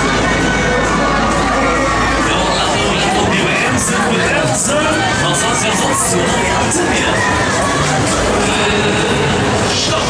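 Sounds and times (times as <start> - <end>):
crowd screaming and shouting: 0.0 - 10.0
fairground music: 0.0 - 10.0.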